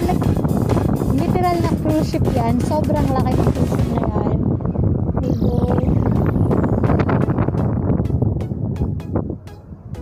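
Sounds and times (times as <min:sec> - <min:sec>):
background music: 0:00.0 - 0:10.0
heavy low rumble: 0:00.0 - 0:10.0
wind buffeting microphone: 0:00.0 - 0:10.0.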